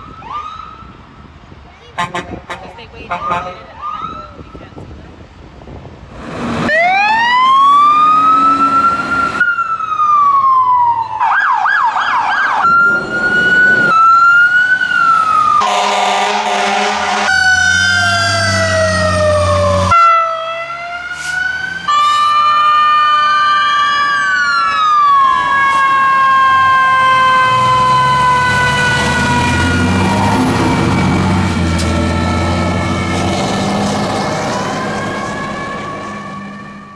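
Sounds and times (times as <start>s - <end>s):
siren yelp: 0.0s - 1.0s, 3.1s - 4.5s, 6.7s - 33.3s, 34.3s - 36.9s
truck engine rumbling: 0.8s - 36.9s
horn blare: 2.0s - 3.7s, 15.6s - 17.8s
siren wailing: 6.7s - 36.9s.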